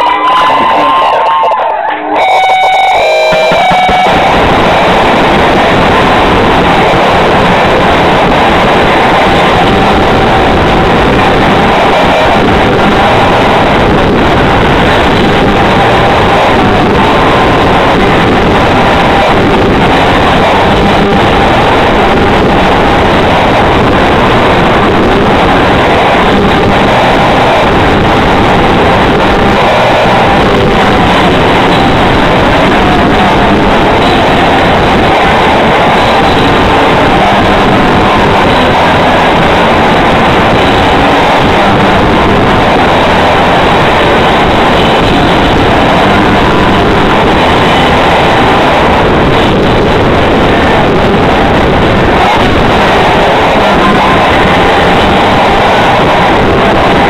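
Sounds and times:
distorted live rock band: 0.0 - 57.0.

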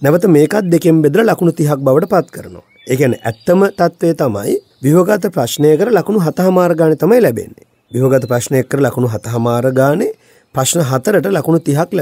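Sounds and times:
man lecturing: 0.0 - 12.0.

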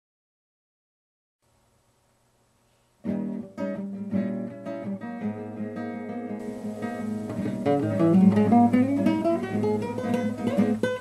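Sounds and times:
classical acoustic guitar: 3.0 - 11.0.

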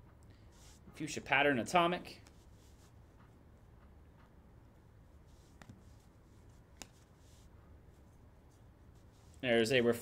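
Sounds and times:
trading cards being shuffled: 5.3 - 9.4.

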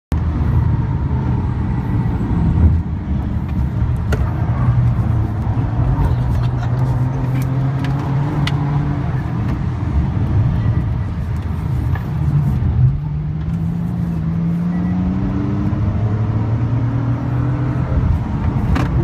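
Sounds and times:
road noise: 0.1 - 19.0
car engine from inside cabin: 0.2 - 19.0.

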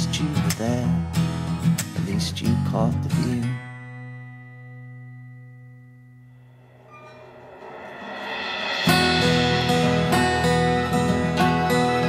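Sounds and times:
strummed acoustic guitar: 0.0 - 12.0
percussion hits: 6.4 - 12.0.

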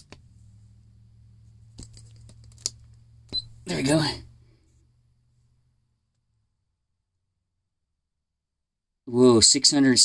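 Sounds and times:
faint steady low hum: 0.0 - 7.2.

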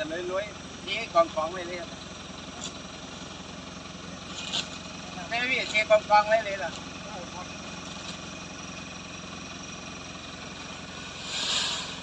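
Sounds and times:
pickup truck engine idling: 0.0 - 12.0
short rustle or scrape: 4.3 - 4.8, 10.9 - 12.0.

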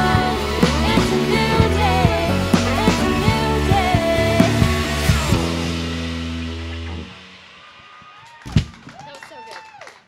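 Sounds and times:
live band final chord: 0.0 - 7.6.

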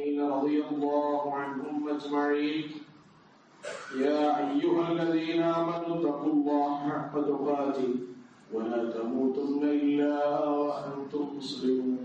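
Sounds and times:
man chanting recitation: 0.0 - 2.9, 3.9 - 12.0.

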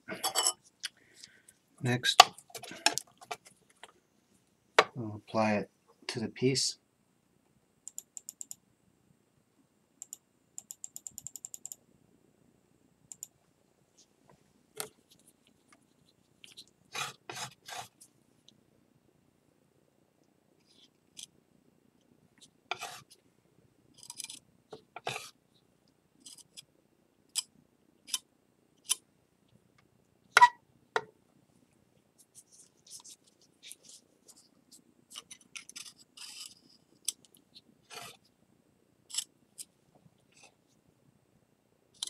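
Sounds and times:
palette knife scraping on glass: 22.7 - 23.0.

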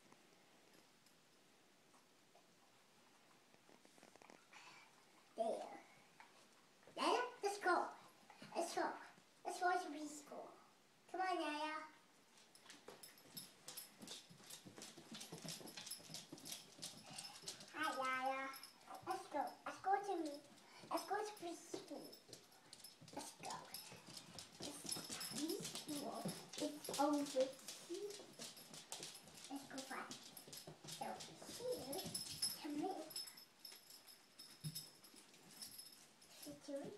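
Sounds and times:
dog claws clicking on wood floor: 12.6 - 19.3, 20.1 - 35.8
person's voice: 24.7 - 28.1.

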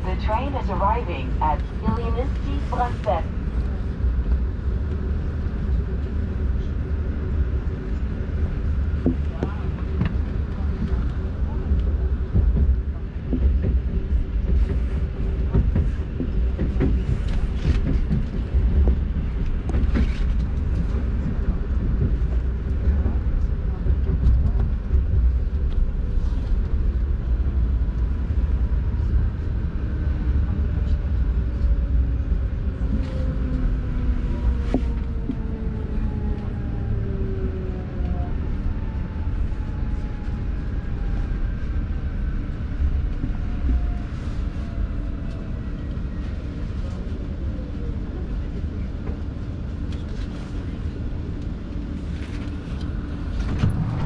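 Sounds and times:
train wheels rumbling on rails: 0.0 - 54.0.

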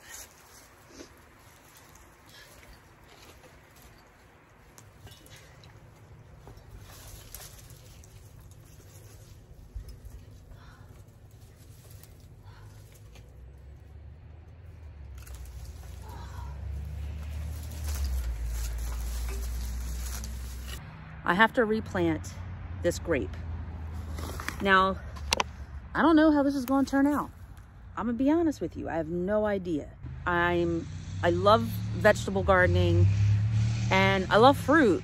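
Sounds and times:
rustling and crackling dry vines: 0.0 - 20.8, 23.8 - 25.7, 26.4 - 28.1.

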